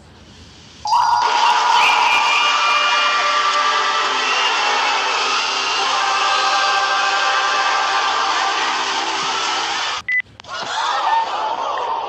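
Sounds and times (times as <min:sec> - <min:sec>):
harsh droning noise: 0:00.9 - 0:10.0.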